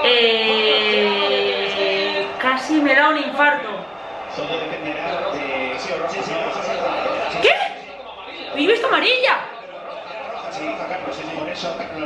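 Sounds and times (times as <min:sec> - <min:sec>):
man commentating on television: 0:00.0 - 0:12.0.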